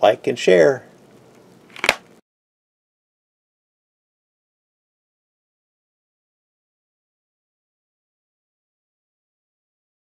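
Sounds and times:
faint room noise: 0.0 - 2.2
sharp click: 1.7 - 2.1.

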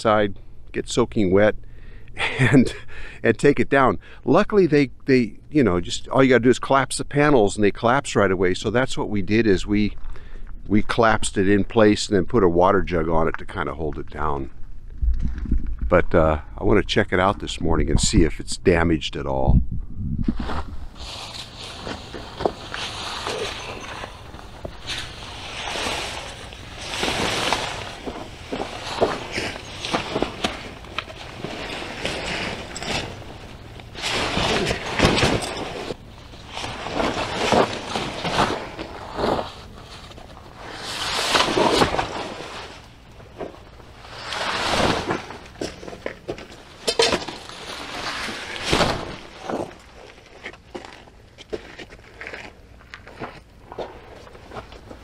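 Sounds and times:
nylon fabric rustling and flapping: 20.3 - 46.0, 46.6 - 51.0
footsteps on gravel: 20.4 - 40.8, 44.0 - 55.0.

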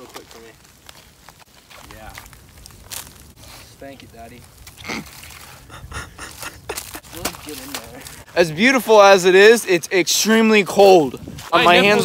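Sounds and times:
crunching of icy snow and branch: 0.0 - 8.3.

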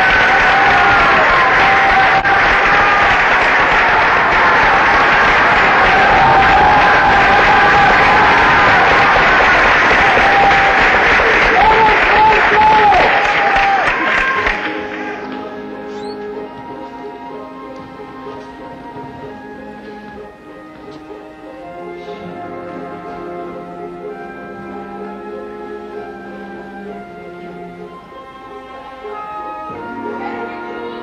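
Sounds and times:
audience applauding: 0.0 - 17.2.

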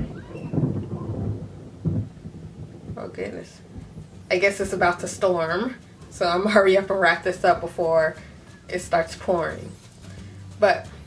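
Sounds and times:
thunder rumbling: 0.0 - 11.0.

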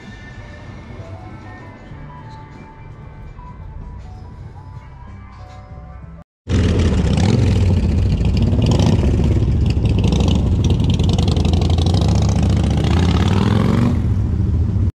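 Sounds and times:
motorcycle engine pulling away: 6.5 - 14.9.

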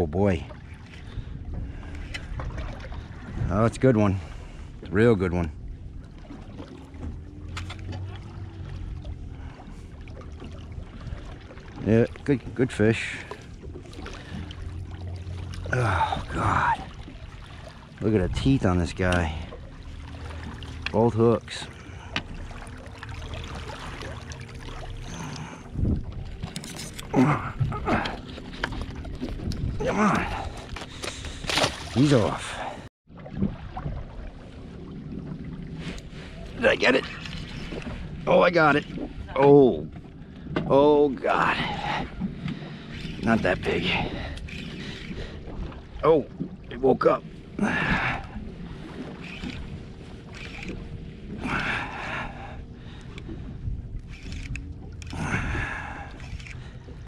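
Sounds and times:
water moving around boat: 0.0 - 57.0
wind rumble on microphone: 1.0 - 6.1, 25.4 - 31.0, 47.6 - 57.0
wind on microphone: 25.6 - 28.2, 29.0 - 30.8.

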